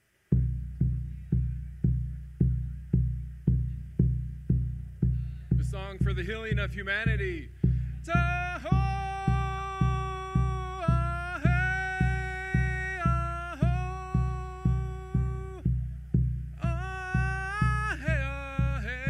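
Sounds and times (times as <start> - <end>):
steady drum beat: 0.3 - 19.0
man chanting: 5.5 - 15.7, 16.6 - 19.0.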